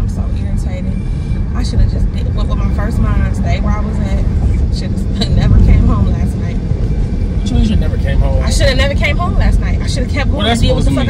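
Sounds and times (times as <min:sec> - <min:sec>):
car road and engine rumble: 0:00.0 - 0:11.0
faint voices: 0:07.4 - 0:11.0.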